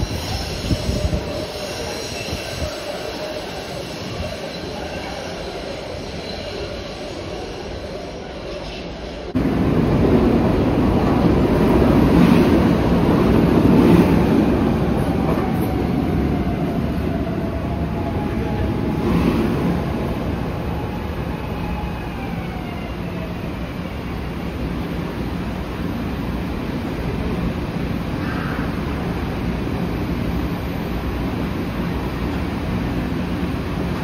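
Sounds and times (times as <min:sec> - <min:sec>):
subway train rolling to a stop: 0:00.0 - 0:34.0.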